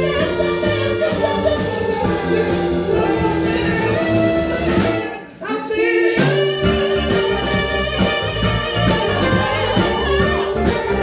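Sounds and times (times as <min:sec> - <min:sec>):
low keyboard or bass notes: 0:00.0 - 0:05.1, 0:06.6 - 0:11.0
singers holding harmony notes: 0:00.0 - 0:11.0.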